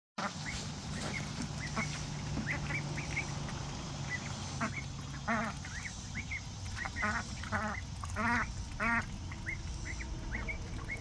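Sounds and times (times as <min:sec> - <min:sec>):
ducks giving short high calls: 0:00.2 - 0:03.4, 0:04.0 - 0:11.0
steady low hum: 0:00.2 - 0:11.0.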